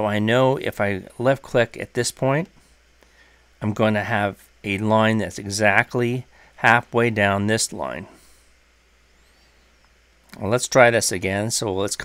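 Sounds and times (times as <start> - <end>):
person speaking: 0.0 - 2.6, 3.6 - 8.4, 10.3 - 12.0
background hiss: 0.0 - 12.0
steady low hum: 0.0 - 12.0.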